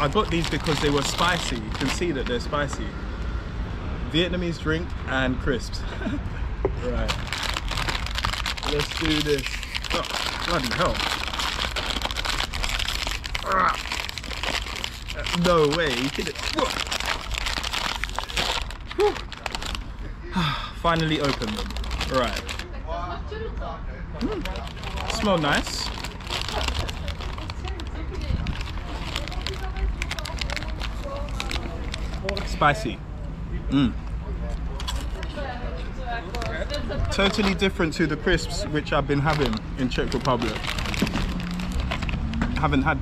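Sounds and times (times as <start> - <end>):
plastic packet crinkling: 0.0 - 2.8, 7.0 - 19.9, 20.8 - 22.7, 24.2 - 32.8, 36.2 - 37.9, 38.5 - 42.8
faint background voices: 18.4 - 41.3.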